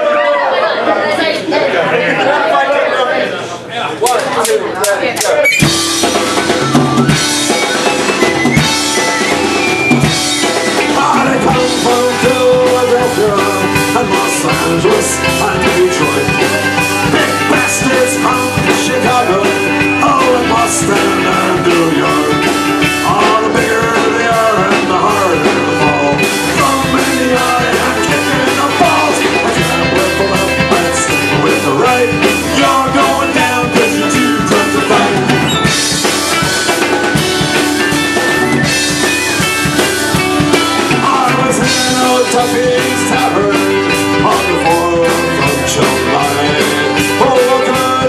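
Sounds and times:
drums: 4.0 - 48.0
guitar: 4.2 - 48.0
rock band playing live: 4.6 - 48.0
person singing: 10.0 - 37.2, 40.5 - 48.0.

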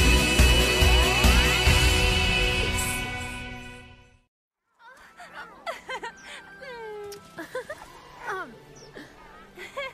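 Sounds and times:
faint background music: 4.8 - 9.9.

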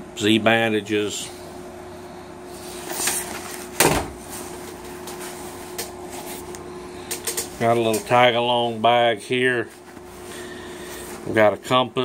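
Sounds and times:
steady hum: 0.0 - 12.0
nylon vest handling noise: 9.7 - 11.5.

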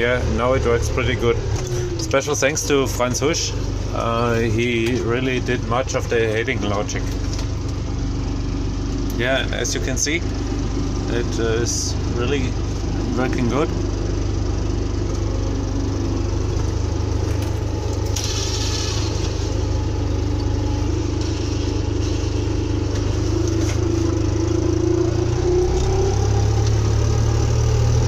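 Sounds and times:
tractor engine running under load: 0.0 - 28.0
whining tone: 0.0 - 28.0.

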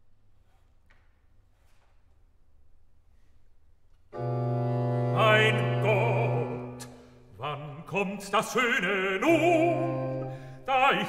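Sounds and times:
chamber organ chord: 4.1 - 8.0, 8.6 - 11.0.

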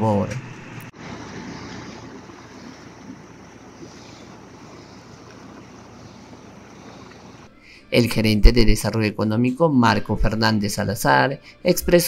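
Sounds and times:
floodwater rushing: 0.9 - 7.5.

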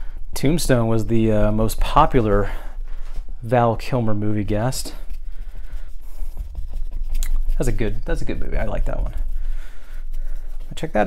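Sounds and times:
steady low hum: 0.0 - 11.0
paintbrush scratching on canvas: 3.5 - 11.0.

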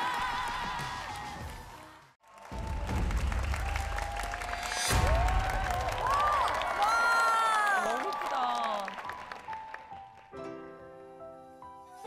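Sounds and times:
audience clapping: 0.0 - 10.4.

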